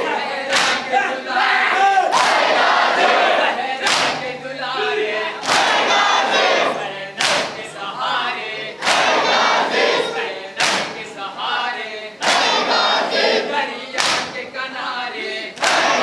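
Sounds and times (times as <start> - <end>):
crowd slapping chests in unison: 0.0 - 11.2, 12.2 - 14.5, 15.2 - 16.0
crowd shouted chanting: 0.0 - 16.0.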